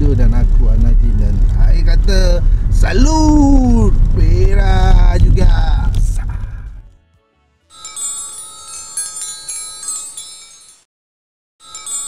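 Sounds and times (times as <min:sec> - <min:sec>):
tinkling chimes: 0:07.7 - 0:10.9, 0:11.6 - 0:12.0.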